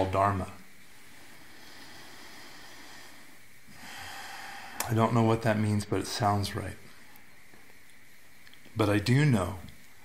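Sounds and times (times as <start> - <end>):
faint room hiss: 0.0 - 10.0
person drawing a breath: 0.9 - 4.8
mouth click: 4.8 - 5.0.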